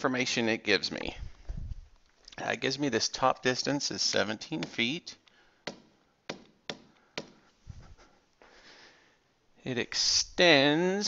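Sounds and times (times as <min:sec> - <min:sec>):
stylus tapping on tablet screen: 0:05.6 - 0:07.4.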